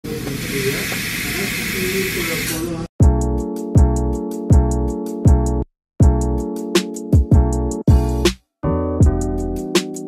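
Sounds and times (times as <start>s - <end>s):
dental equipment air hiss: 0.2s - 2.7s.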